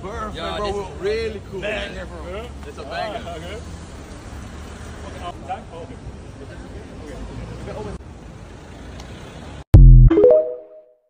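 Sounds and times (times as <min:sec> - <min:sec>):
indistinct voices of passers-by: 0:00.0 - 0:09.6
low traffic rumble: 0:00.0 - 0:09.7.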